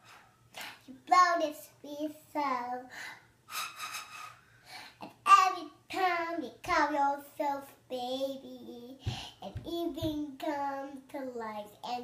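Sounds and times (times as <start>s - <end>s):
girl singing: 0.6s - 3.3s, 5.0s - 12.0s.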